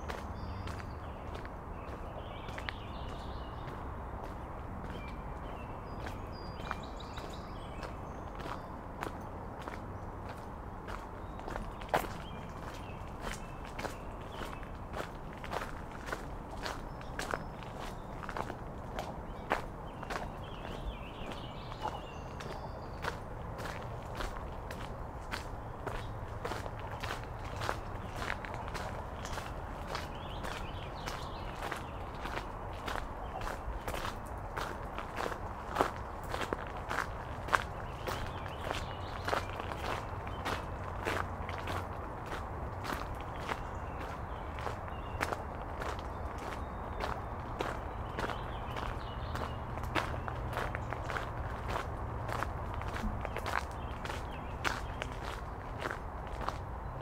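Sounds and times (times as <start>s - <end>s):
footsteps on wet gravel: 0.0s - 57.0s.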